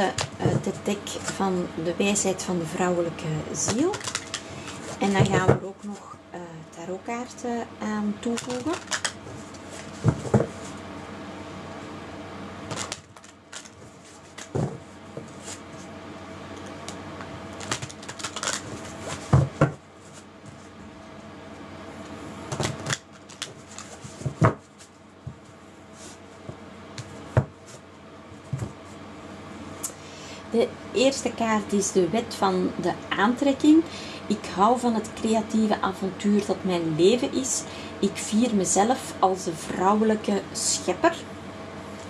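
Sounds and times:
faint hum: 0:00.0 - 0:42.0
cards shuffling: 0:03.7 - 0:05.4, 0:08.3 - 0:10.7, 0:12.7 - 0:15.6, 0:17.6 - 0:20.2, 0:22.5 - 0:24.9.

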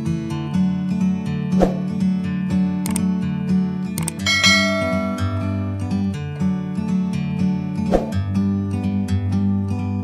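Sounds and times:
strummed acoustic guitar music: 0:00.0 - 0:10.0
click: 0:02.8 - 0:03.1, 0:04.0 - 0:04.2
bright bell chime: 0:04.2 - 0:06.2.

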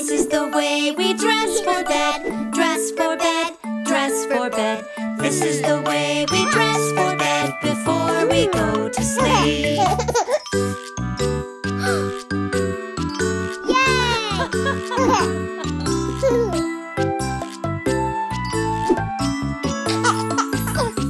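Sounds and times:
lullaby bell-like melody: 0:00.3 - 0:21.0
small child's voice: 0:13.6 - 0:14.5.

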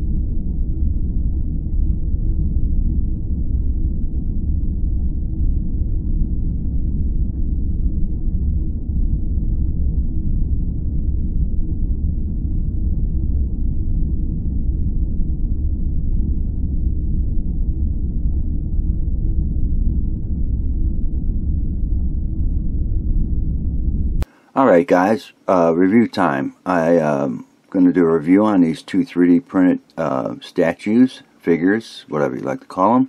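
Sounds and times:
steady deep rumble: 0:00.0 - 0:33.0.

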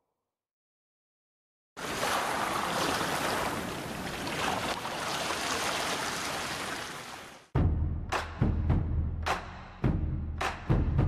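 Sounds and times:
rushing water: 0:01.8 - 0:07.5.

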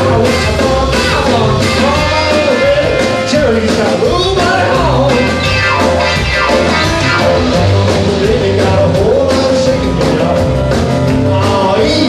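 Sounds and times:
bass: 0:00.0 - 0:12.0
drums: 0:00.0 - 0:12.0
electric guitar: 0:00.0 - 0:12.0
keyboard piano: 0:00.0 - 0:12.0.

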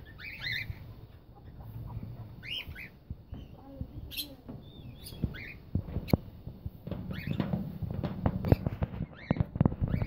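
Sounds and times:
parrots chirping: 0:00.0 - 0:06.2, 0:06.9 - 0:10.0.

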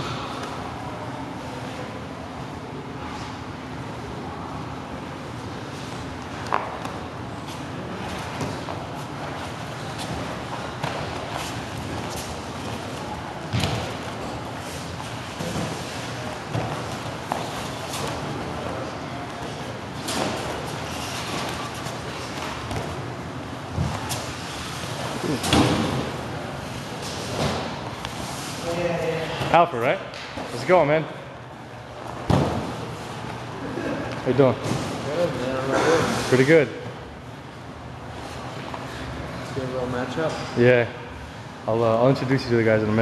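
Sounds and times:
bodies thudding on foam mats: 0:32.1 - 0:32.9.

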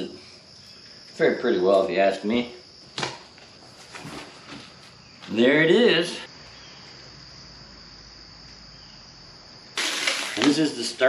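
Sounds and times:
cardboard rustling and scraping: 0:03.6 - 0:04.9.

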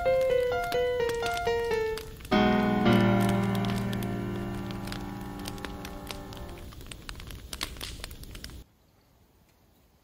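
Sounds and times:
piano piece: 0:00.0 - 0:06.8
wood fire crackling: 0:00.0 - 0:08.7.

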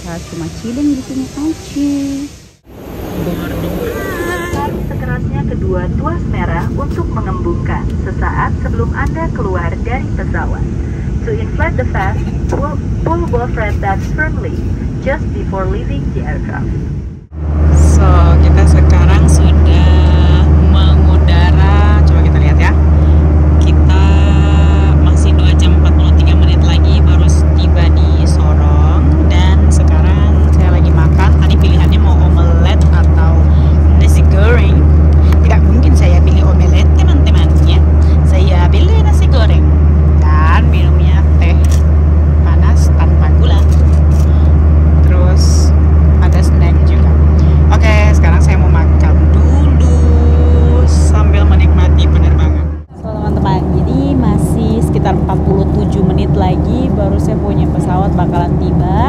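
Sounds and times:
airliner cabin drone: 0:00.0 - 0:59.0.

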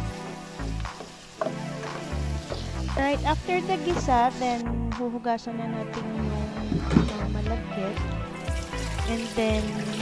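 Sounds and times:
meat and onions sizzling in oil: 0:00.0 - 0:04.6, 0:08.1 - 0:10.0
background music with bass beat: 0:00.0 - 0:05.2, 0:05.9 - 0:09.2.

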